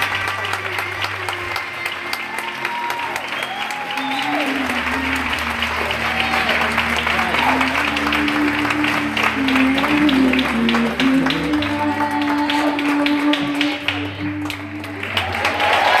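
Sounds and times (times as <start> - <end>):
audience applause: 0.0 - 16.0.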